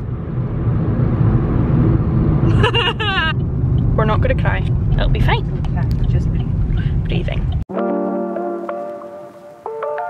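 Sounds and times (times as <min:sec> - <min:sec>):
car cabin low rumble: 0:00.0 - 0:07.7.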